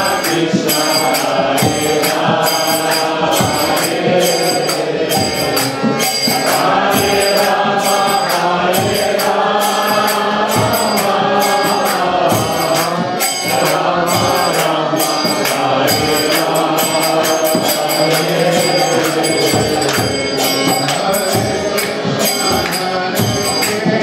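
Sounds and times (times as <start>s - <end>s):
hand cymbals struck: 0.0s - 24.0s
harmonium: 0.0s - 24.0s
voices chanting: 0.0s - 24.0s.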